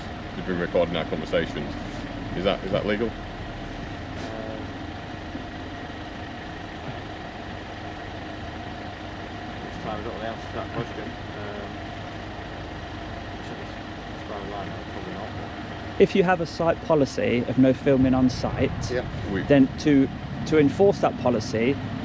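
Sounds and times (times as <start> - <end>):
vehicle engine idling: 0.0 - 22.0
faint voices talking: 4.2 - 4.7, 13.3 - 20.0.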